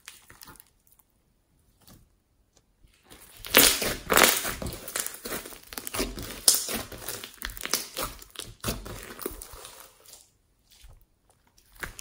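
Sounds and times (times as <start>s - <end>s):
slime crackling and popping: 3.1s - 10.3s, 11.5s - 12.0s.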